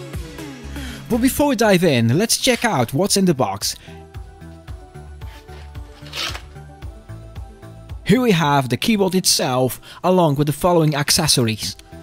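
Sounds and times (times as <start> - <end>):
music with pulsing bass: 0.0 - 2.2, 3.7 - 8.4.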